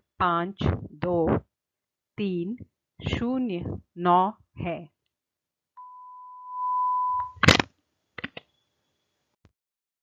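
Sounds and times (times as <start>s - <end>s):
electronic beep tone: 5.8s - 7.4s.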